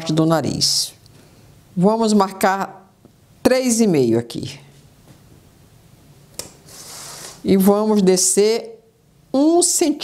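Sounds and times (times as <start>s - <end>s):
scraping rub across cardboard: 6.7s - 7.4s.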